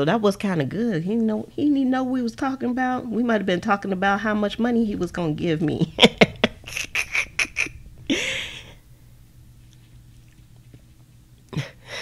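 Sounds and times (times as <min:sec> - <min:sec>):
woman laughing: 0:05.8 - 0:08.8.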